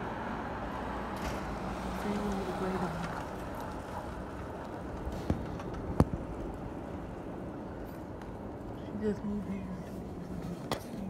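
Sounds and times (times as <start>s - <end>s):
city street at night: 0.0s - 11.0s.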